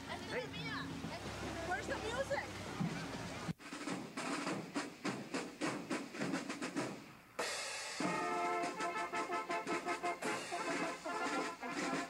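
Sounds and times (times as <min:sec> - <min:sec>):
snare and bass drum cadence: 0:02.8 - 0:12.0
brass holding notes: 0:08.0 - 0:12.0.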